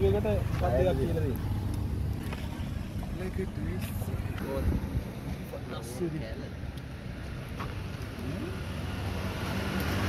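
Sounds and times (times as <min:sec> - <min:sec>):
wind rumble on microphone: 0:04.0 - 0:05.5.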